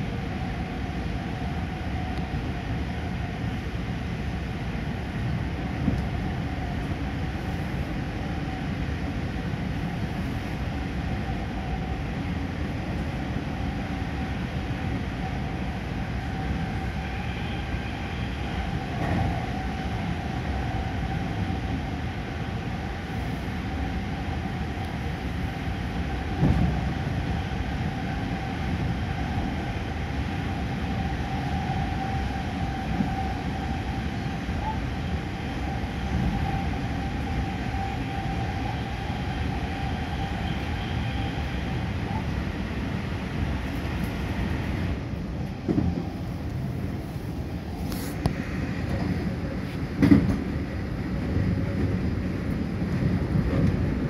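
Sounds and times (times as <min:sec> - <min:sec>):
train wheels rumbling: 0:00.0 - 0:54.0
thump: 0:50.0 - 0:50.4.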